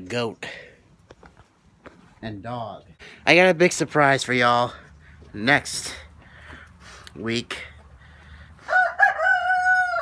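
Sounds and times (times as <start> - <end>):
rooster crowing: 8.6 - 10.0.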